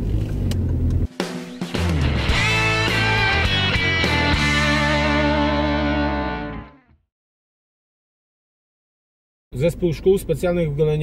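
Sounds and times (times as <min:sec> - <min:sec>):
car interior rumble: 0:00.0 - 0:01.2
music with held notes: 0:01.2 - 0:07.0.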